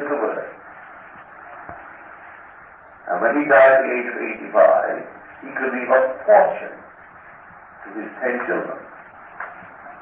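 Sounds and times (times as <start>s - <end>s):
tape recording hiss: 0.0s - 10.0s.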